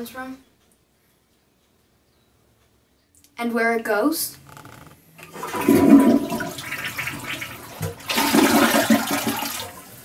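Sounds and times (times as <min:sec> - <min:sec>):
toilet flushing: 0:05.2 - 0:10.0.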